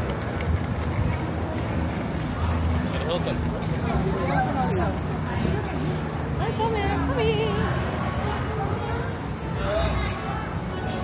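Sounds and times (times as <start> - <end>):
voices of passers-by: 0.0 - 11.0.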